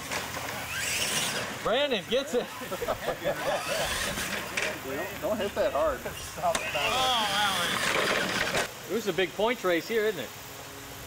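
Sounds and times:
person laughing: 0:02.4 - 0:04.3.

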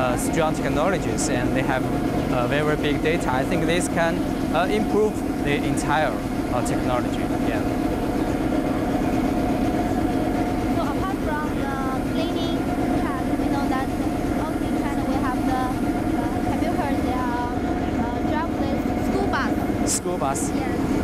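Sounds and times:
street sweeper mechanical hum: 0:00.0 - 0:21.0.

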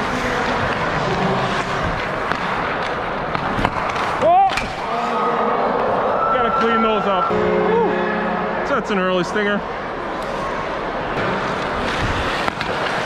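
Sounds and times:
skate blades scraping ice: 0:00.0 - 0:04.3, 0:11.2 - 0:13.0
stick and puck clacks: 0:00.0 - 0:04.8, 0:11.2 - 0:13.0
players' voices: 0:00.0 - 0:13.0
steady music tones: 0:07.3 - 0:10.1.

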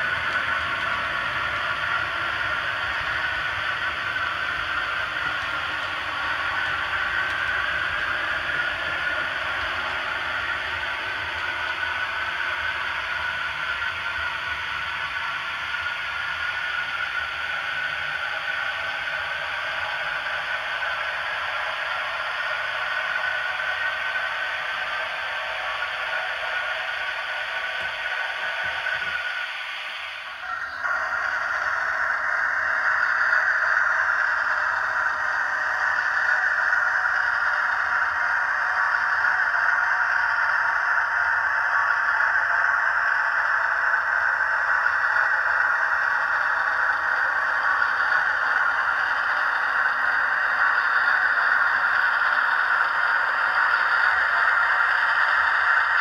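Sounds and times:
steam locomotive hissing: 0:00.0 - 0:56.0.

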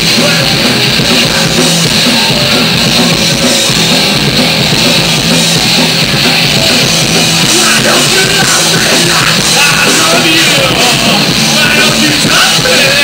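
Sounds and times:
live rock band playing: 0:00.0 - 0:13.0.

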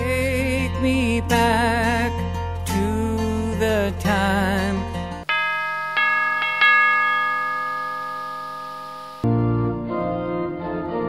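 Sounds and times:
bell chimes ringing: 0:05.3 - 0:09.3.

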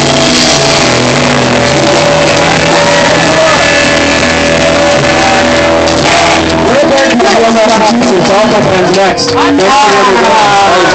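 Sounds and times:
loud live rock band: 0:00.0 - 0:10.9.

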